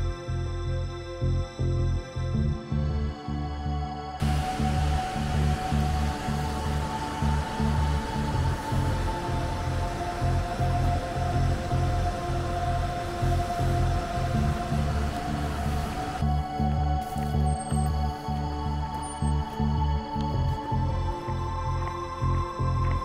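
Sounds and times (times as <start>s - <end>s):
background music with pulsing bass: 0.0s - 23.0s
steady rushing noise: 4.2s - 16.4s.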